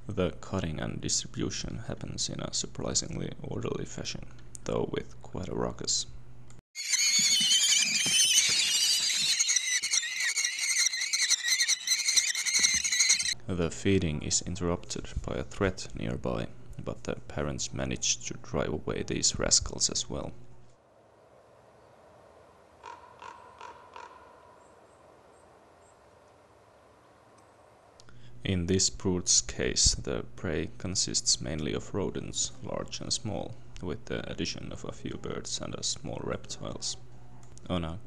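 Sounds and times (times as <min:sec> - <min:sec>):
crow cawing: 0:08.0 - 0:13.4, 0:22.8 - 0:24.6.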